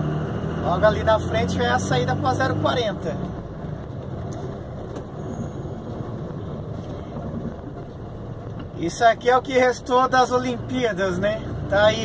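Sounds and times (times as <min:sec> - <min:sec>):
car engine hum: 0:00.0 - 0:12.0
tyre and wind noise: 0:03.2 - 0:08.8.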